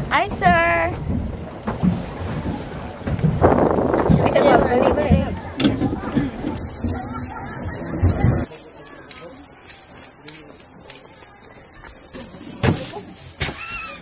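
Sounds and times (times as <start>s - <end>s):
voices: 4.0s - 14.0s
high-pitched insect chorus: 6.6s - 14.0s.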